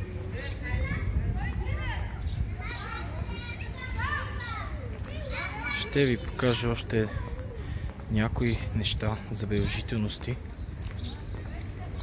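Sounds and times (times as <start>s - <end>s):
children calling and shouting: 0.0s - 12.0s.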